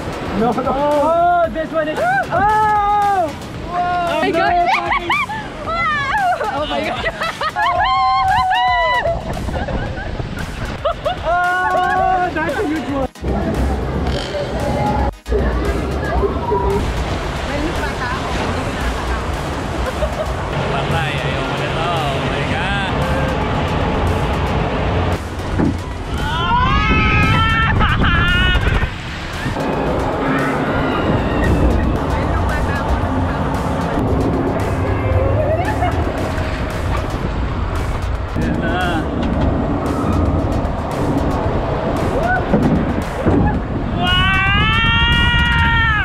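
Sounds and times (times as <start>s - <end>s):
background music: 0.0s - 46.0s.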